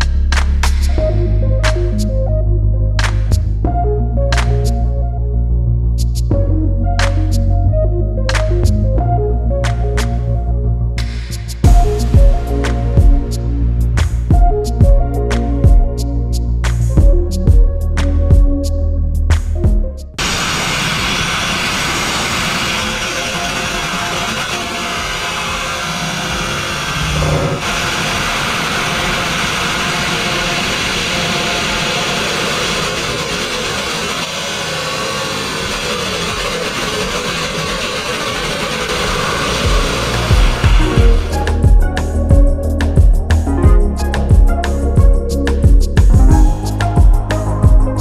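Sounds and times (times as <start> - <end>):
background music with a beat: 0.0 - 5.1, 6.0 - 20.2, 39.5 - 48.0
grit blast nozzle hissing: 20.2 - 42.2.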